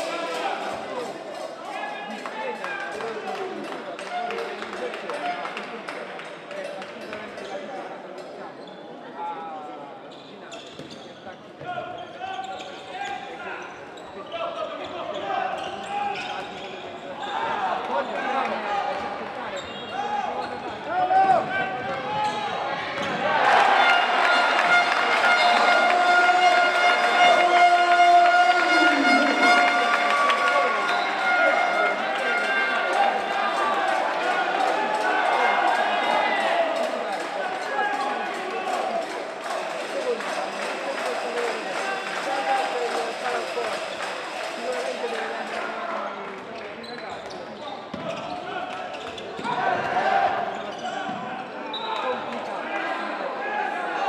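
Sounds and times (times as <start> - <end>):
players' voices: 0.0 - 54.0
ball bouncing on indoor court: 10.6 - 11.1, 46.8 - 48.3.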